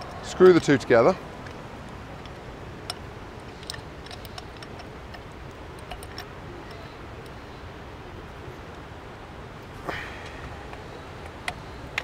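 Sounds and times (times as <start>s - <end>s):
background hiss: 0.0s - 12.0s
metal clicks of screwing parts: 1.4s - 7.4s.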